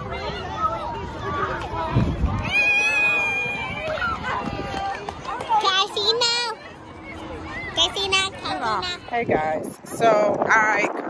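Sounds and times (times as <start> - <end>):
young children talking: 0.0 - 10.0.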